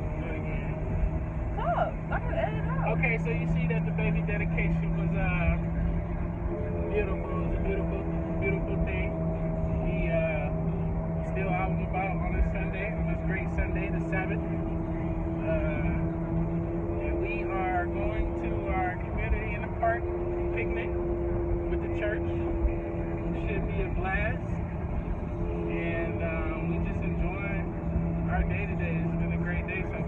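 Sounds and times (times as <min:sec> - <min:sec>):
car road and engine rumble: 0:00.0 - 0:30.0
held steady tones: 0:00.0 - 0:30.0.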